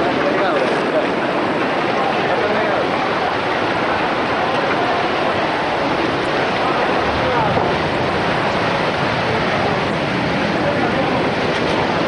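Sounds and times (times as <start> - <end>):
surf breaking over rocks: 0.0 - 12.0
wind on microphone: 0.0 - 12.0.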